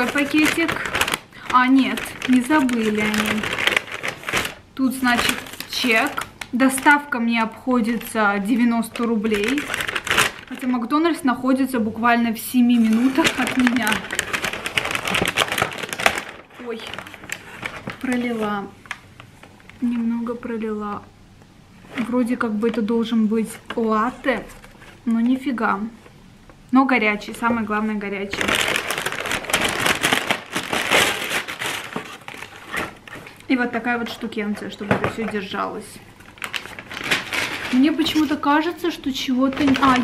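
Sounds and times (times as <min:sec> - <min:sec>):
paper bag rustling: 0:00.0 - 0:07.1, 0:07.9 - 0:10.9, 0:12.5 - 0:20.0, 0:27.3 - 0:40.0.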